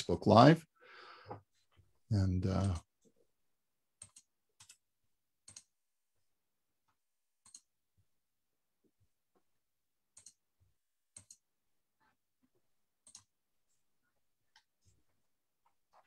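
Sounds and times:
computer mouse clicks: 4.0s - 4.8s, 5.4s - 5.7s, 7.4s - 7.7s, 10.1s - 10.4s, 11.1s - 11.4s, 13.0s - 13.3s.

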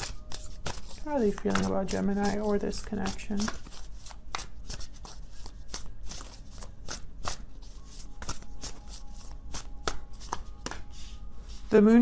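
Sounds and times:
cards being shuffled: 0.0s - 11.6s.

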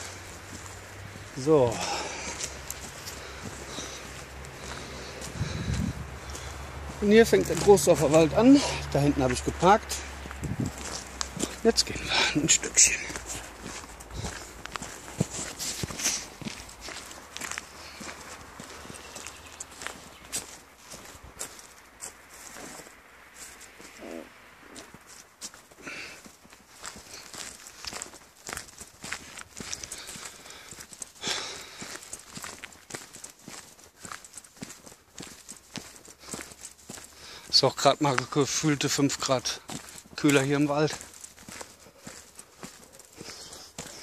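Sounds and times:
footsteps on dirt path: 0.0s - 44.0s.

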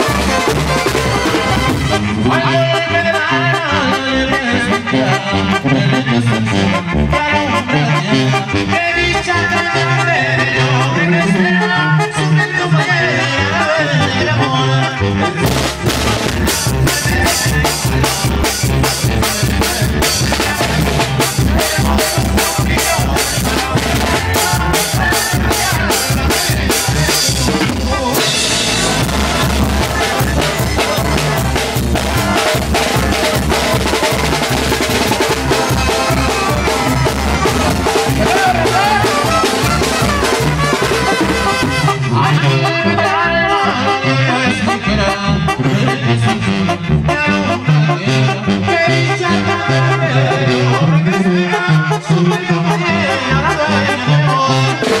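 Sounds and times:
drum kit beat: 0.0s - 2.4s, 15.4s - 42.2s, 54.8s - 55.0s
live brass band music: 0.0s - 55.0s
tuba bass line: 0.0s - 55.0s.

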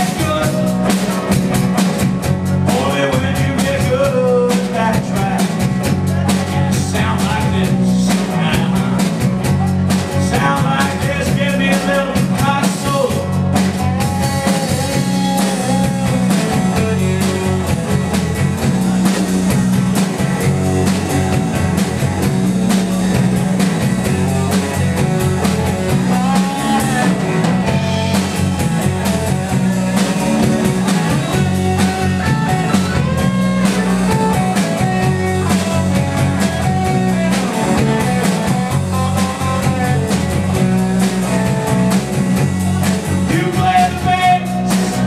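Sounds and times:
bass guitar: 0.0s - 45.0s
drum kit: 0.0s - 45.0s
electric guitar lead: 0.0s - 45.0s.

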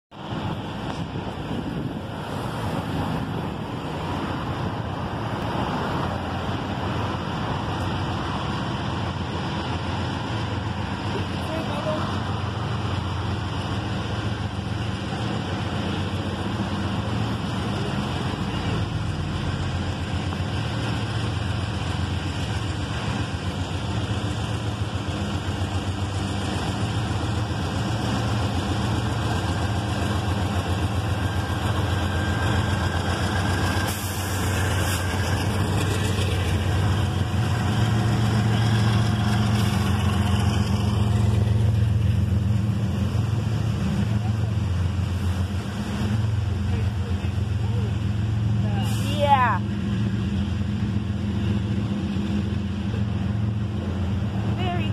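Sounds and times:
diesel locomotive engine drone: 0.1s - 54.9s
freight cars rumbling past: 0.1s - 54.9s.

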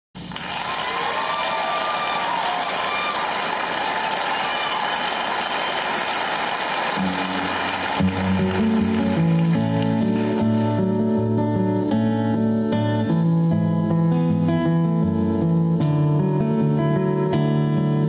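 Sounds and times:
audience applause and cheering: 0.2s - 10.8s
guitar playing: 6.9s - 18.0s.

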